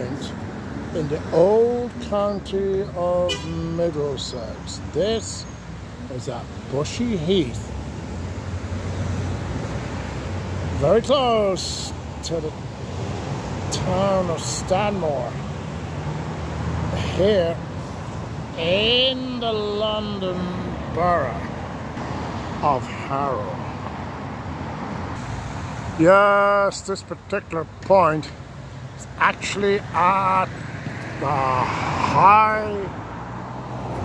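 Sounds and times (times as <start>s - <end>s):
road traffic passing: 0.0s - 34.0s.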